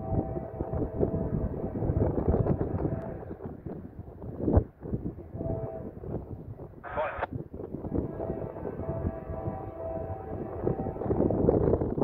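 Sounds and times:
distant locomotive horn: 0.0s - 3.3s, 5.2s - 6.2s, 7.8s - 11.7s
wind buffeting microphone: 0.0s - 12.0s.

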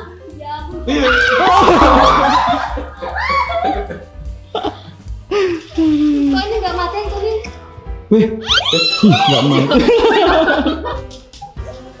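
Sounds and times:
background music: 0.0s - 12.0s
loud laughter: 1.2s - 4.0s, 8.1s - 11.0s.

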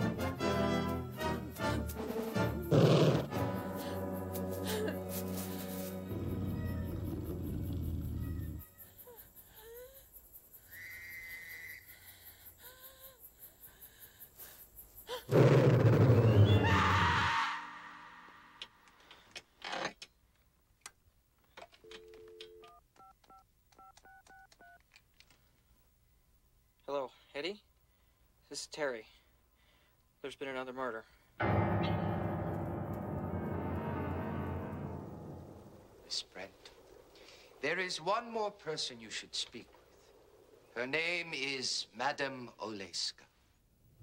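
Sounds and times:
horror film music: 0.0s - 7.3s, 31.4s - 36.1s
loud sudden burst: 31.4s - 36.1s
faint eerie sounds: 31.4s - 40.9s.

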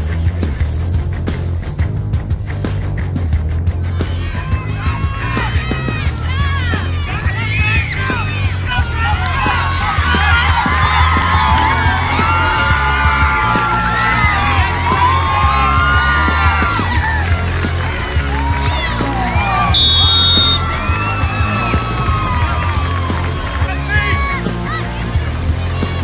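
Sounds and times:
rock music with bass line: 0.0s - 26.0s
crowd cheering and yelling: 3.8s - 26.0s.

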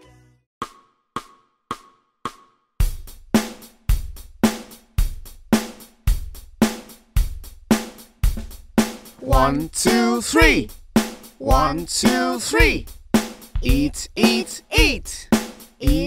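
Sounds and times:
drum-kit beat: 2.3s - 16.0s.

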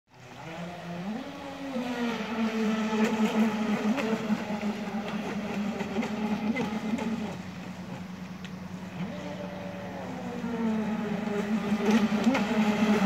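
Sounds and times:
rc speedboat motor: 0.1s - 13.0s.

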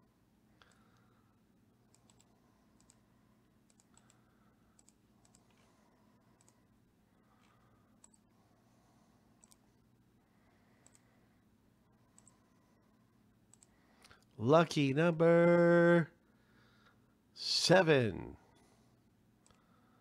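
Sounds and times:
faint computer mouse clicks: 1.9s - 3.0s, 3.7s - 4.2s, 4.8s - 5.7s, 6.4s - 6.6s, 8.0s - 8.2s, 9.4s - 9.7s, 10.8s - 11.0s, 12.1s - 12.4s, 13.5s - 14.3s.

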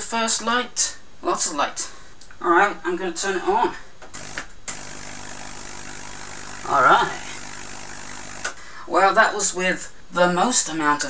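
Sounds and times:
tesla coil buzzing hum: 4.1s - 8.6s.

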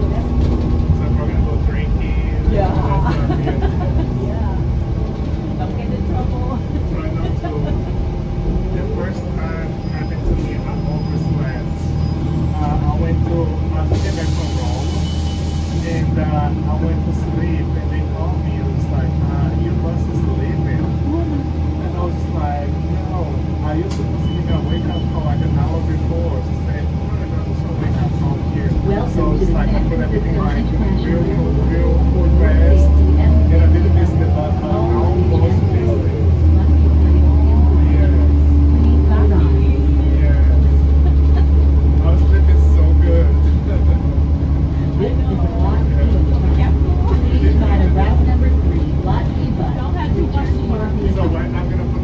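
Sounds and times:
bus engine rumble with whine: 0.0s - 52.0s
air hiss: 13.9s - 16.1s.

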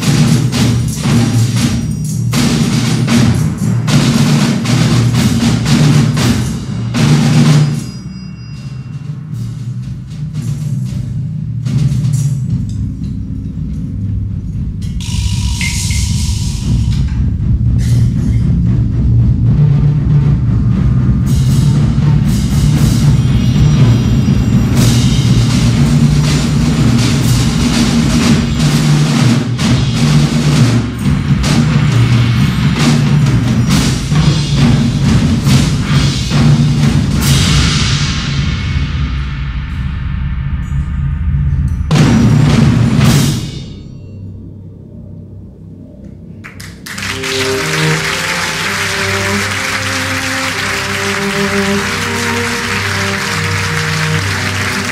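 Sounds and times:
low drum and timpani rumble: 0.0s - 8.0s, 8.7s - 43.9s, 46.7s - 54.9s
fast dense drum strokes: 0.0s - 8.2s, 8.9s - 43.9s, 47.0s - 54.9s.

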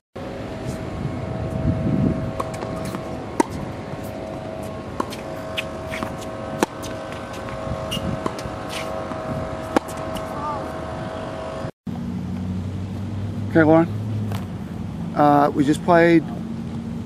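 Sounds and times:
steady background hum: 0.2s - 17.0s.

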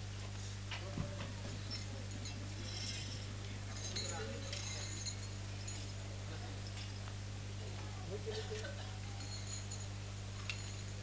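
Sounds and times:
low electrical hum: 0.0s - 11.0s
faint background noises: 0.2s - 11.0s.

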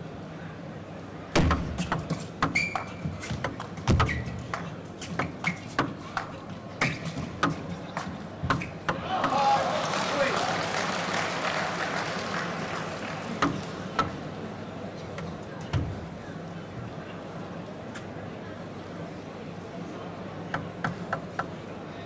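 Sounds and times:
crowd cheering and applause: 9.0s - 14.1s.

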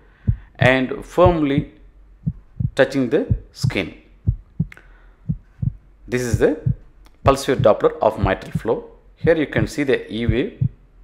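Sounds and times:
soft low doppler pulses: 0.3s - 9.7s.

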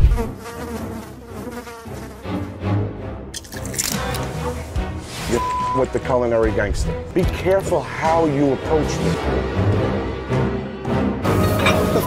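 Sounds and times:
flies buzzing: 0.0s - 2.9s.

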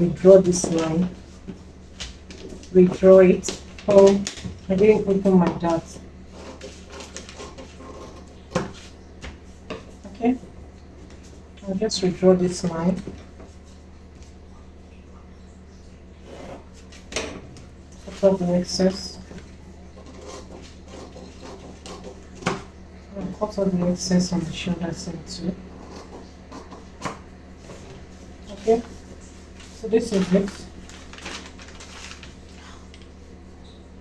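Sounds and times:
paper rustling on a table: 0.4s - 5.3s, 6.3s - 10.0s, 27.6s - 33.2s.

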